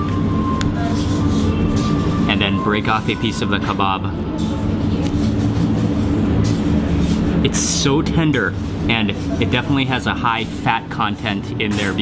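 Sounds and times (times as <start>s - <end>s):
ventilation fan drone: 0.0s - 12.0s.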